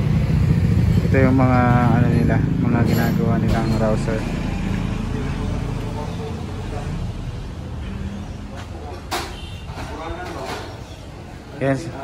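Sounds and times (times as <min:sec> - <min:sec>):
engine and traffic rumble: 0:00.0 - 0:12.0.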